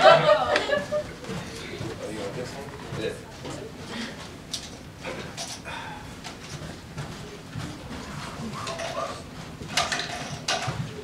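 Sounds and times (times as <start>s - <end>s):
murmur of students talking: 0.0s - 10.6s.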